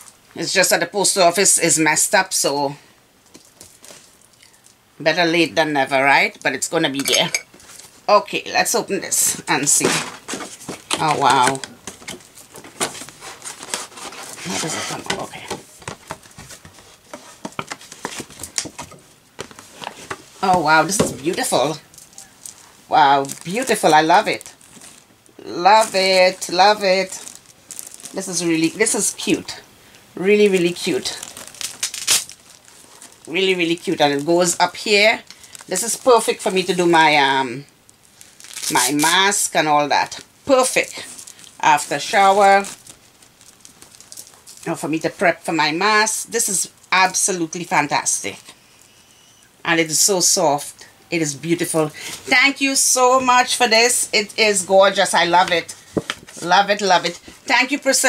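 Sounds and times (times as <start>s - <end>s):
rustling of package: 3.3s - 4.8s, 9.6s - 29.4s, 30.4s - 36.8s, 37.8s - 39.5s, 40.2s - 44.7s, 54.9s - 57.5s.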